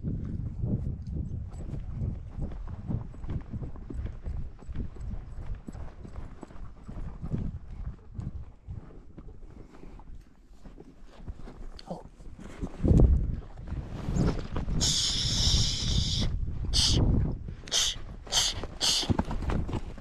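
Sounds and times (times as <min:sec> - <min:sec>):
horse hoofbeats on sandy dirt: 0:00.0 - 0:15.8, 0:17.1 - 0:20.0.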